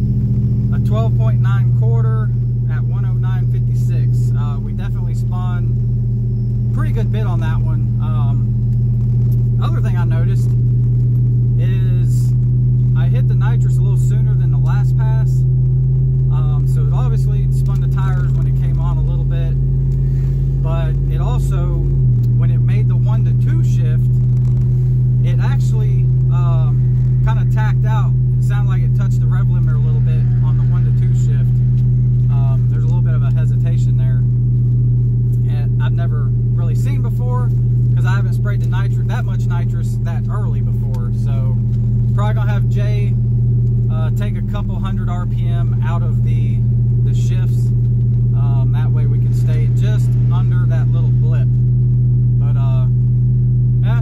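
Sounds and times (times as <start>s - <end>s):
truck engine idling: 0.0s - 54.0s.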